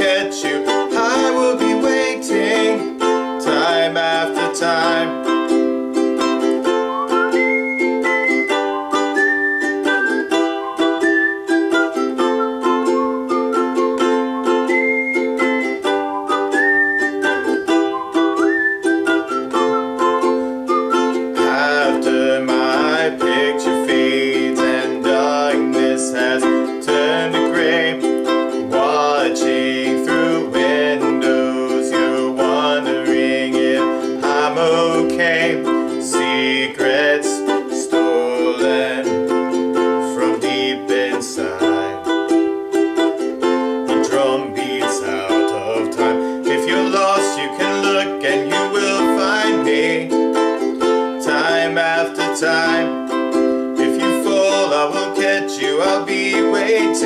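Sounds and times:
ukulele strumming chords: 0.0s - 57.0s.

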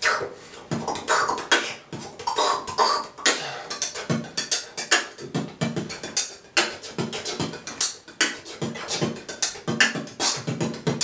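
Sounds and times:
beatboxing: 0.0s - 11.0s.

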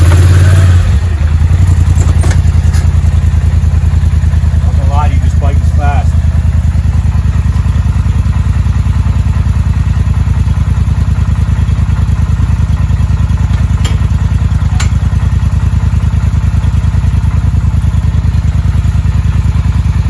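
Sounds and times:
atv engine idling: 0.0s - 20.0s.

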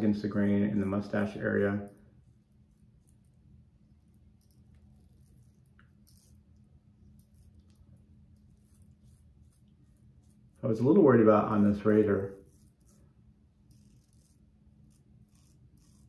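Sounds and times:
low steady hum: 0.0s - 16.0s
razor scratching stubble: 0.0s - 16.0s.

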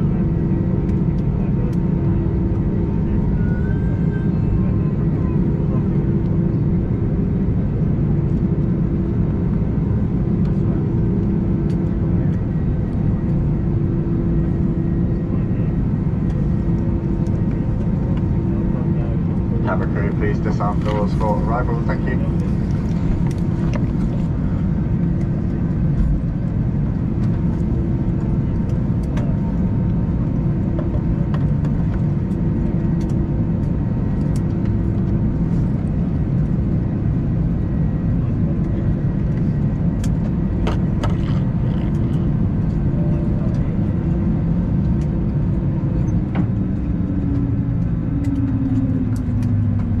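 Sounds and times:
jet engines idling rumble: 0.0s - 50.0s
low steady hum: 0.0s - 50.0s.

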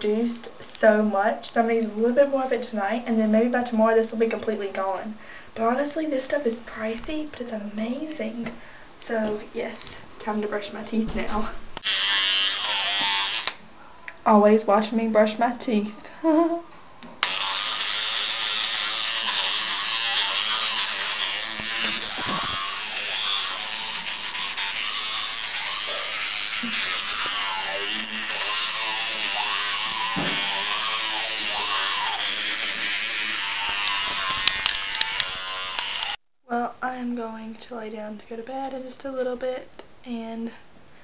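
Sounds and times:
electric toothbrush buzzing: 11.8s - 13.6s, 17.2s - 36.2s.

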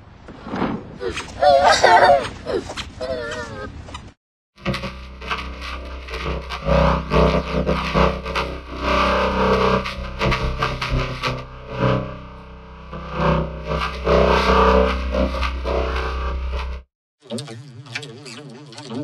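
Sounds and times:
heavy low hum: 1.1s - 16.9s
distorted crackling noise: 3.8s - 16.9s.

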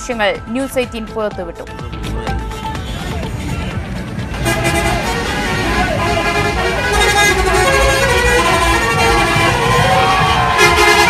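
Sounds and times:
loud music: 0.0s - 11.0s
low vehicle rumble: 1.9s - 11.0s
bus horns: 2.6s - 3.5s, 4.3s - 11.0s.

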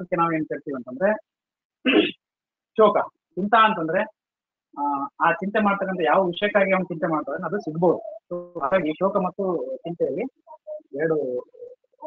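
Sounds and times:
man speaking: 7.0s - 12.0s.

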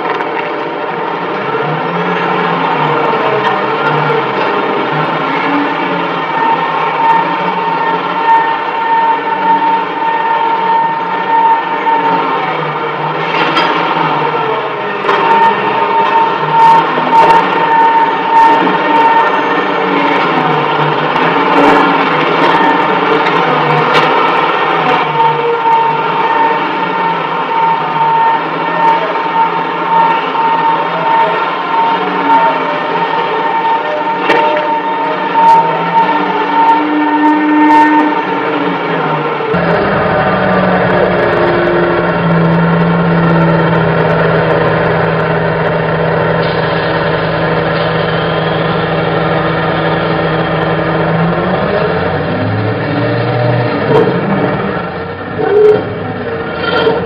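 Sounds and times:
heavy machinery whining: 0.0s - 57.0s.

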